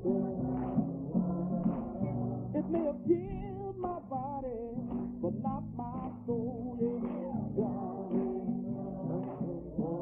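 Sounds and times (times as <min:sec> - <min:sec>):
guitar accompaniment: 0:00.0 - 0:10.0.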